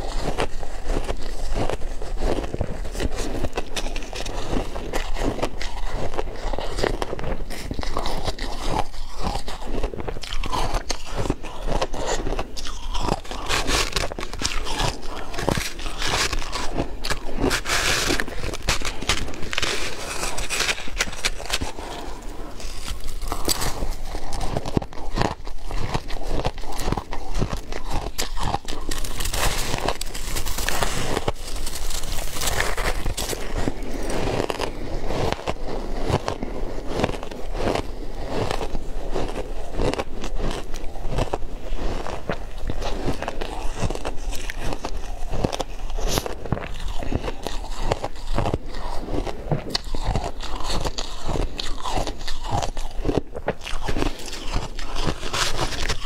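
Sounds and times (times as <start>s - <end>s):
crunching and chewing ice: 0.0s - 56.0s.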